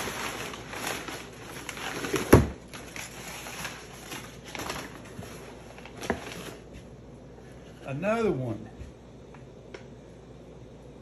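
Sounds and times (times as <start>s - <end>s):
packing paper rustling and crinkling: 0.0s - 7.0s.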